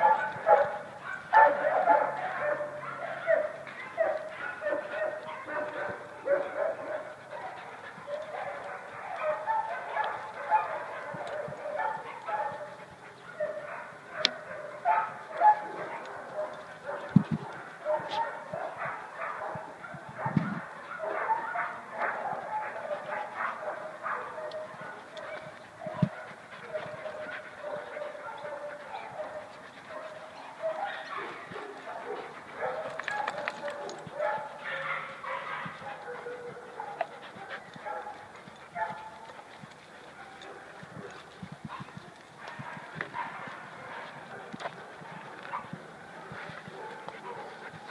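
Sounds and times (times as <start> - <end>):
dogs barking: 0.0 - 47.9.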